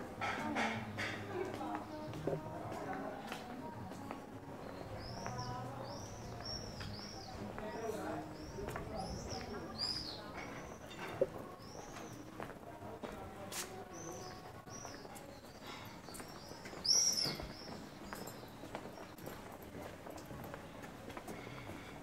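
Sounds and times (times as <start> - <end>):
faint distant voices: 0.0 - 22.0
footsteps on stone paving: 0.0 - 22.0
birds chirping: 4.5 - 12.5, 13.8 - 19.3.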